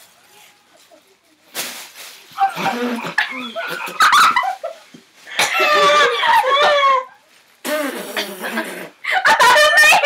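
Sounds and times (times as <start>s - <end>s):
high-pitched squealing laughter: 2.4s - 4.8s, 5.4s - 7.2s, 8.5s - 10.0s.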